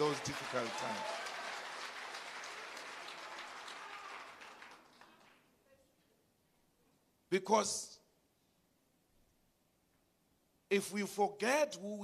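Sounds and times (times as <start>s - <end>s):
audience applause: 0.0s - 5.5s.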